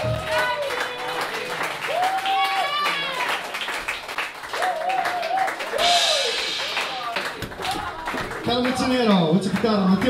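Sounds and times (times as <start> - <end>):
audience clapping and cheering: 0.0 - 10.0
wavering whoop: 1.9 - 3.3, 4.6 - 6.5
cymbal wash: 5.8 - 7.4.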